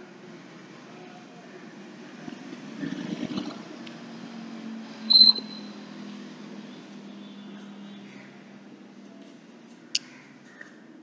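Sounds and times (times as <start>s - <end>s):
high-pitched chalk squeak: 5.1s - 5.7s.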